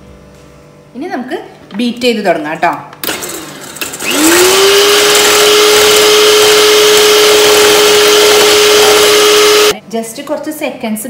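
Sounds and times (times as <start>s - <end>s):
electric hand mixer whining: 4.0s - 9.8s.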